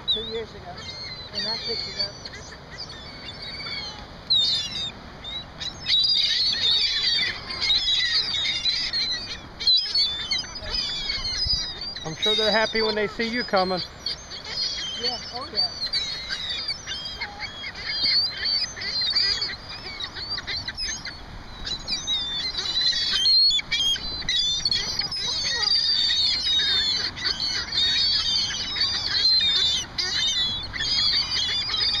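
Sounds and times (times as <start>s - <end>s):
high-pitched bird calls: 0.0s - 32.0s.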